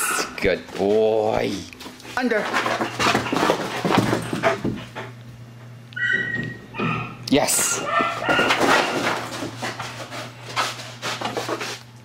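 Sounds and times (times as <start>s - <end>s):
dog scrambling on carpet: 2.4s - 5.0s.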